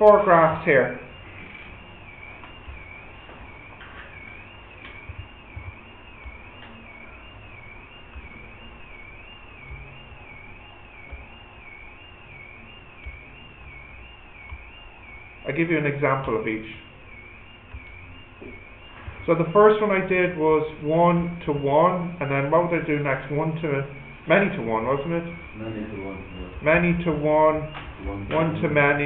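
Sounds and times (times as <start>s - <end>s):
low background hum: 0.0s - 29.0s
wavering high-pitched electronic whine: 0.0s - 29.0s.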